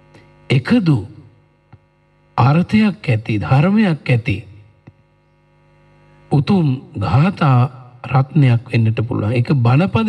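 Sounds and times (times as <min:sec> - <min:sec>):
faint electrical hum: 0:00.0 - 0:10.0
man speaking: 0:00.5 - 0:01.3, 0:02.4 - 0:04.6, 0:06.3 - 0:10.0.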